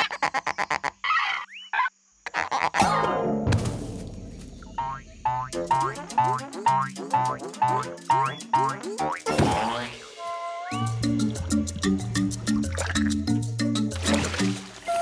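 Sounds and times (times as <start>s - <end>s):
cartoon boing sound effects: 2.7s - 3.5s, 4.8s - 10.2s
bouncy bass line: 4.6s - 10.0s, 10.8s - 14.4s
children's cartoon music: 4.8s - 15.0s.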